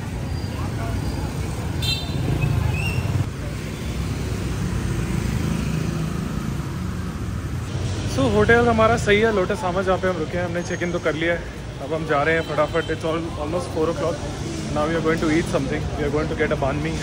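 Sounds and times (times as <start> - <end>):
traffic engine rumble: 0.0 - 17.0.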